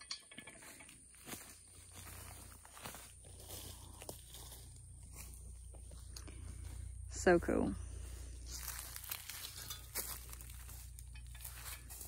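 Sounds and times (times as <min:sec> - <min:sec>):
footsteps crunching dry leaves: 0:00.6 - 0:07.1, 0:07.8 - 0:12.0.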